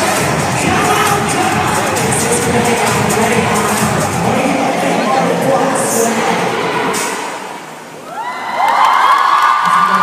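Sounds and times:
crowd screaming and cheering: 5.0s - 10.0s.

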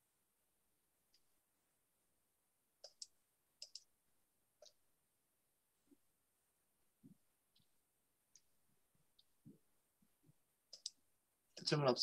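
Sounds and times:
computer mouse clicks: 2.8s - 3.9s, 4.6s - 4.8s, 10.7s - 11.0s.

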